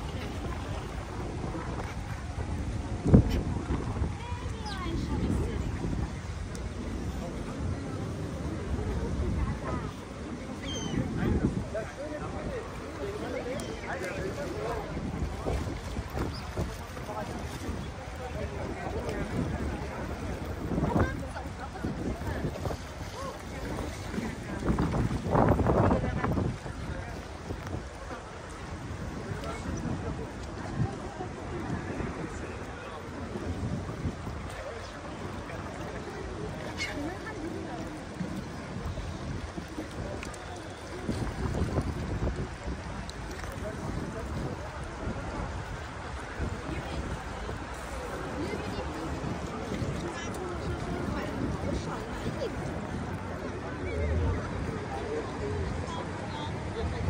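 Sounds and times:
water lapping against wooden pier: 0.0s - 57.0s
wind rumbling on microphone: 0.0s - 57.0s.

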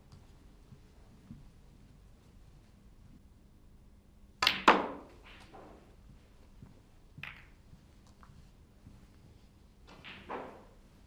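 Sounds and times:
snooker cue and balls clacking: 4.4s - 11.0s.

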